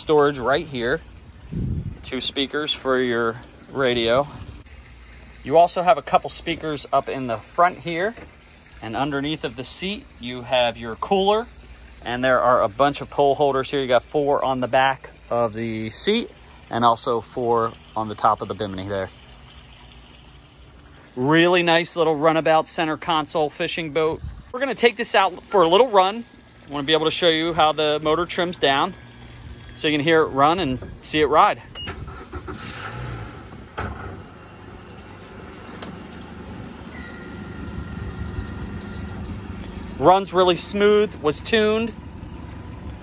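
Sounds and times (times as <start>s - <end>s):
faint outdoor hiss: 0.0s - 43.0s
outboard motor idling: 0.0s - 43.0s
faint high whine: 36.8s - 39.3s.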